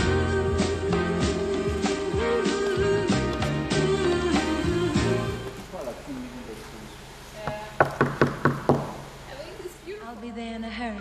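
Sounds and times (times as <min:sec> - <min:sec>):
knuckles knocking on hollow column: 0:07.5 - 0:09.0.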